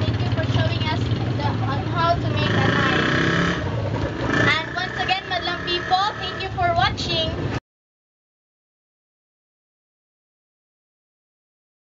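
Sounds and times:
women talking: 0:00.0 - 0:03.1, 0:04.5 - 0:07.4.

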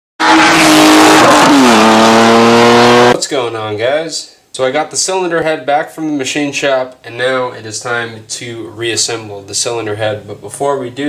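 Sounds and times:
loud car engine: 0:00.2 - 0:03.2
road and tyre noise: 0:00.2 - 0:03.2.

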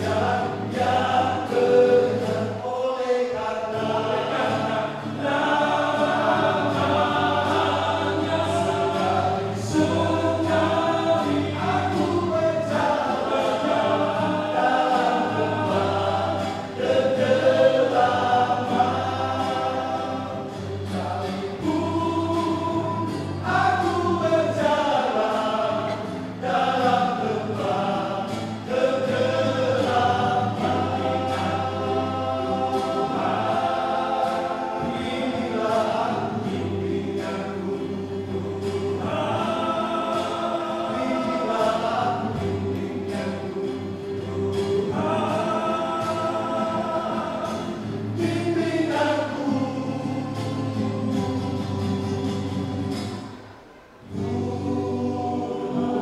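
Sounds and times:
male vocal group singing: 0:00.0 - 0:53.4, 0:54.0 - 0:56.0
acoustic guitar strumming: 0:00.0 - 0:56.0.

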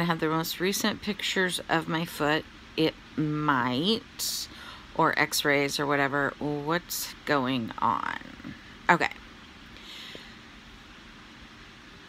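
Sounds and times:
faint breath: 0:04.5 - 0:04.9, 0:09.8 - 0:10.5.

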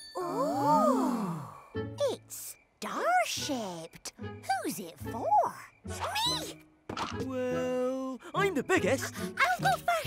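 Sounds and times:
cartoon voices sighing ooh: 0:00.2 - 0:01.6
soft children's show music: 0:00.2 - 0:10.0.

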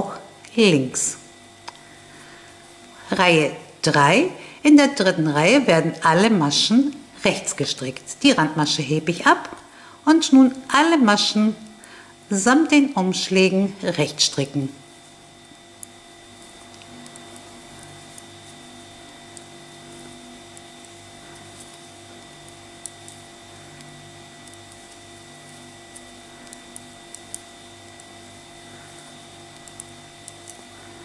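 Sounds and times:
steady electrical hum: 0:00.0 - 0:31.0.

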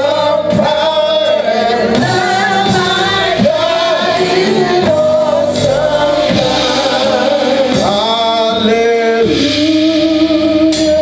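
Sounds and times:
group singing gospel into microphones: 0:00.0 - 0:11.0.

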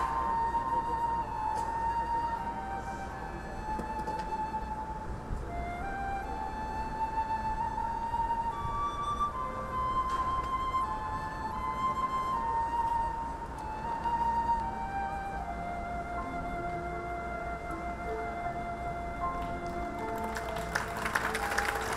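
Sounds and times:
marching band playing slow melody: 0:00.0 - 0:21.9.

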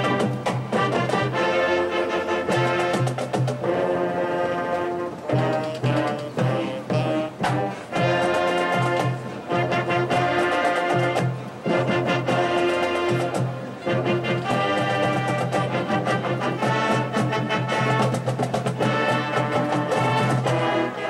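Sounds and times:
marching band brass chords: 0:00.0 - 0:21.0.

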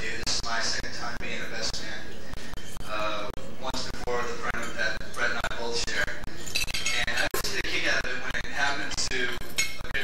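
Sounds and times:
man talking: 0:00.0 - 0:02.2, 0:02.8 - 0:10.0
glassware clinking: 0:06.4 - 0:07.3, 0:09.4 - 0:09.9.

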